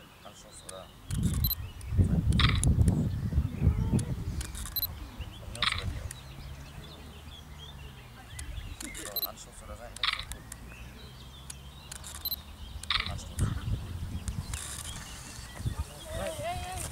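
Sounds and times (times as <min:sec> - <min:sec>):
wind rumble on microphone: 0:01.1 - 0:07.3, 0:12.4 - 0:16.9
children's voices: 0:15.7 - 0:16.9.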